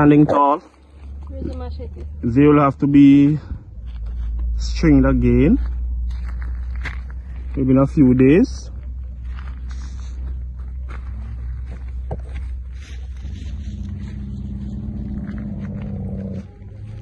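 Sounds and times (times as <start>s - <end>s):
footsteps: 0.0s - 2.2s, 2.9s - 17.0s
constant low rumble: 0.0s - 17.0s
low-pitched drone: 0.0s - 17.0s
rustling of plants: 3.0s - 17.0s.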